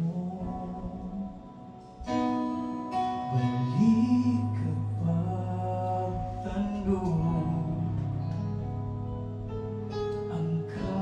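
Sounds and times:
man singing into a microphone: 0.0 - 2.4, 3.0 - 8.9, 10.0 - 11.0
keyboard and guitar accompaniment: 0.0 - 11.0.

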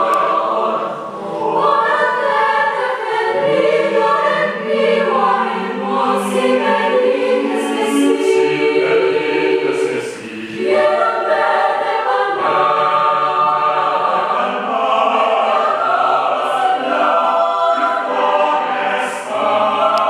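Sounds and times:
mixed choir singing chords: 0.0 - 20.0.

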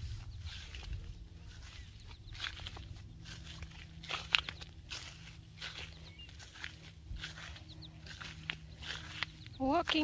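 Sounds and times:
footsteps on a field path: 0.0 - 10.0.

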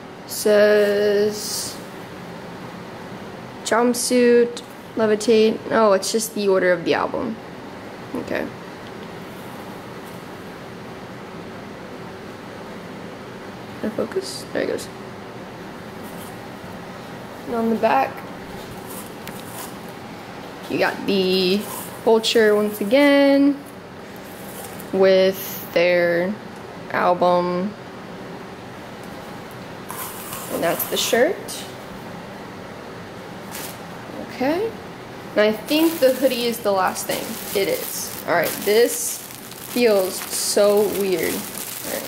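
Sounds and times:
room hum and hiss: 0.0 - 42.0
hand rustling shirt: 35.7 - 42.0.

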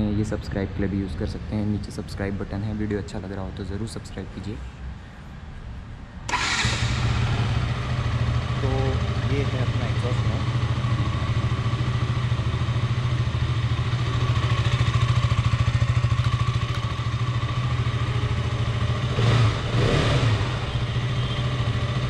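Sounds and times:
engine revving bursts: 6.3 - 10.6, 19.0 - 20.8
motorcycle engine idling: 6.4 - 19.8.

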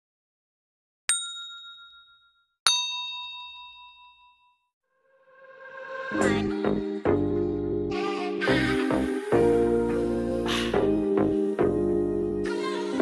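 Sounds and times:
struck bell dings: 1.1 - 4.7
music: 5.7 - 13.0.

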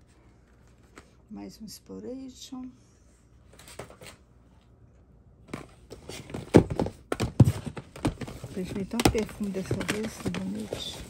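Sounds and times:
plastic bottles knocking and clattering: 5.5 - 11.0.

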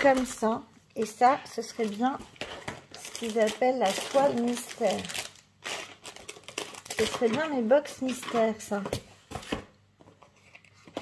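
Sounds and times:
plastic-wrapped package taps and rustles: 1.8 - 5.4.

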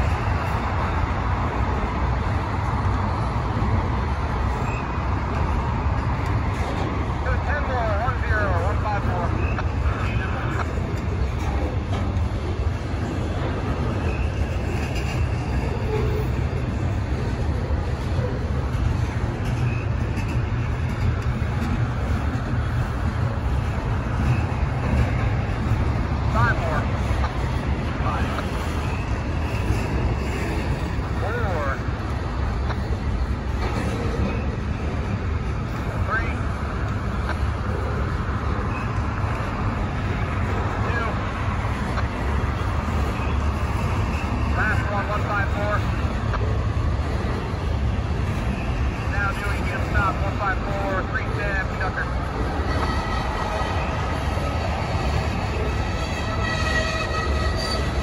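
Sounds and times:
steel wheels on rail: 0.0 - 58.0
faint high squeals: 4.5 - 5.0.

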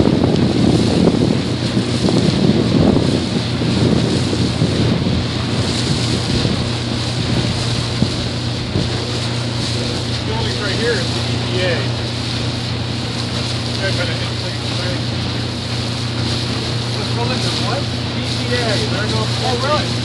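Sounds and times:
boat engine humming: 0.0 - 20.0
water rushing along hull: 0.0 - 20.0
wind buffeting microphone: 0.0 - 20.0.

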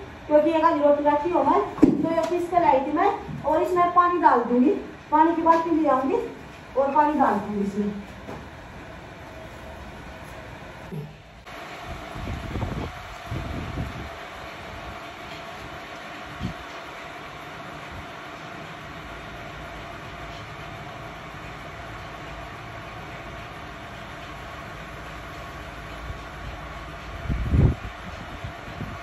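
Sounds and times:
outdoor rumble and hiss: 0.0 - 29.0.

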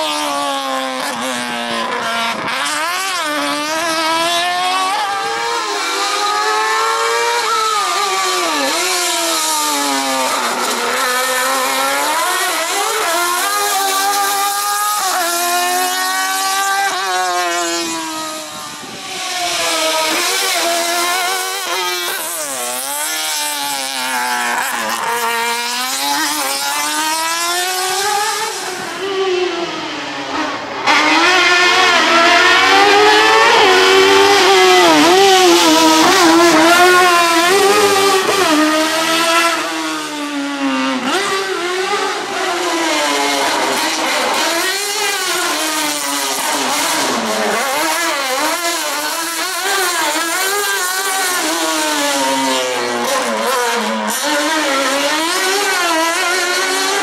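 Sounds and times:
race car engine revving: 0.0 - 57.0.

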